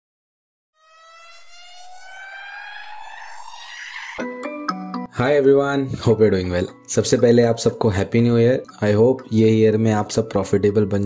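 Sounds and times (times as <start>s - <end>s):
rising pitched tone: 0.8s - 5.1s.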